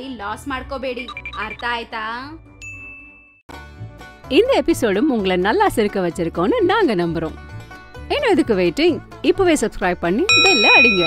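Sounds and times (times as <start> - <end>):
music: 0.0 - 11.0
electronic ding: 10.3 - 11.0.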